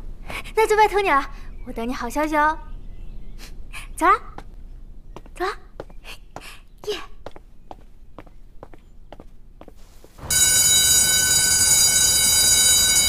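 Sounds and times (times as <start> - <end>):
footsteps walking: 4.3 - 10.6.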